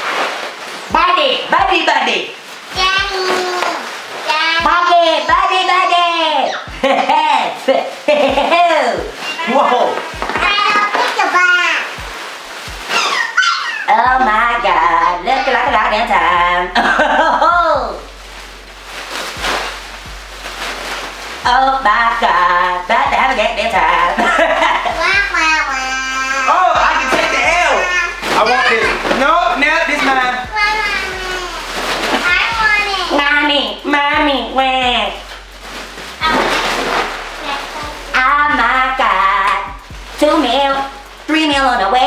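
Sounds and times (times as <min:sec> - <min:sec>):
foil crinkling: 0:00.0 - 0:06.3, 0:07.4 - 0:17.4, 0:18.0 - 0:25.2, 0:27.0 - 0:33.8, 0:34.6 - 0:41.8
breathy helium hiss: 0:01.6 - 0:42.0
squeaky helium voice shouting: 0:12.9 - 0:13.9
person laughing: 0:16.7 - 0:17.8, 0:22.8 - 0:25.0.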